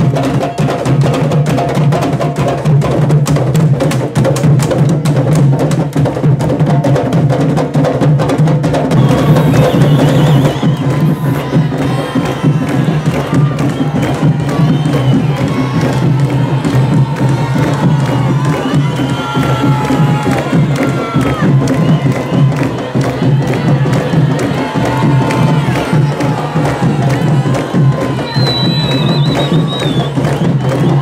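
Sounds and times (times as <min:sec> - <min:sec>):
drum line playing rhythm: 0:00.0 - 0:31.0
crowd cheering and shouting: 0:08.9 - 0:31.0.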